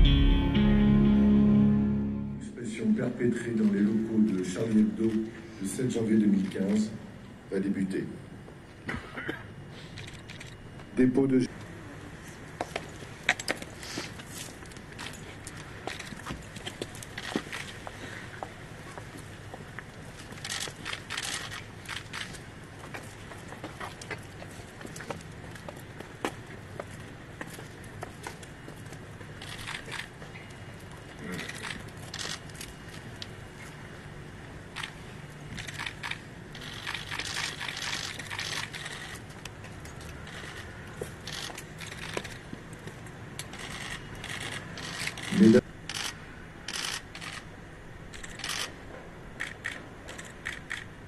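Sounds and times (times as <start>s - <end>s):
hard-soled footsteps on pavement: 12.5s - 45.0s.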